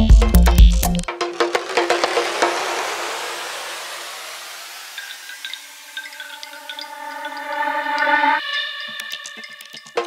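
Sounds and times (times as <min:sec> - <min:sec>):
hissing noise wash: 0:01.2 - 0:10.0
sustained synth tones: 0:02.6 - 0:10.0.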